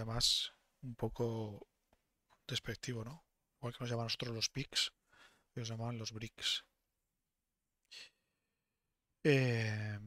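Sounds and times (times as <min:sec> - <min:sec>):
faint breath: 0:05.0 - 0:05.5.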